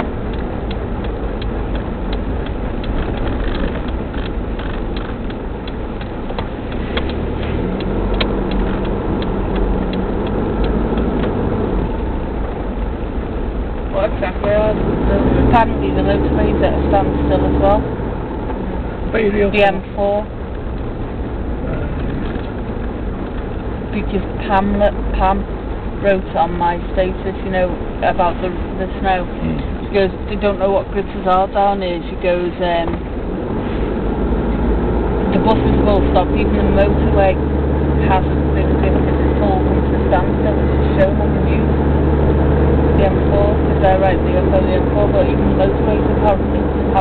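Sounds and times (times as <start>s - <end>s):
car engine and road rumble inside cabin: 0.0s - 47.0s.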